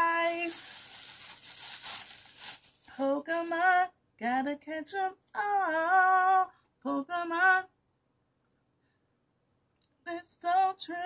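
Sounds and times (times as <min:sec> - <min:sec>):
soft fabric rustling: 0:00.0 - 0:03.7.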